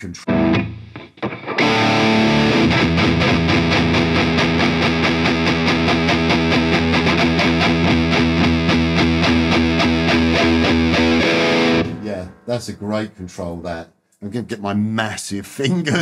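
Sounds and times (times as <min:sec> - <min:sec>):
distorted electric guitar riff: 0:00.0 - 0:12.4.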